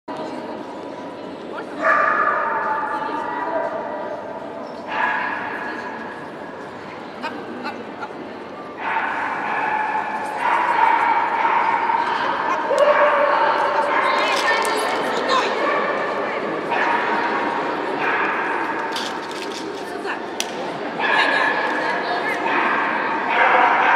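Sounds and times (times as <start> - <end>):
background chatter: 0.1 - 23.9
hum of large hall: 0.1 - 23.9
voices: 1.4 - 23.9.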